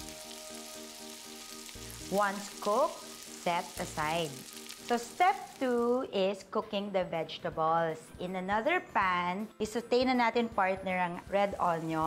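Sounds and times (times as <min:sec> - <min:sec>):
fish fillets sizzling in oil: 0:00.0 - 0:06.1
soft background music: 0:00.0 - 0:12.0.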